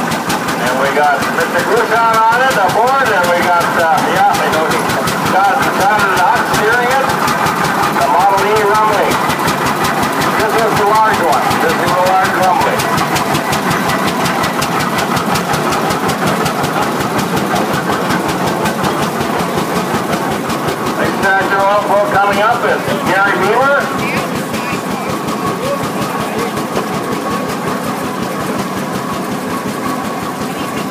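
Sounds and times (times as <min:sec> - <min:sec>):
tractor engine running: 0:00.0 - 0:30.9
voices talking: 0:00.5 - 0:30.9.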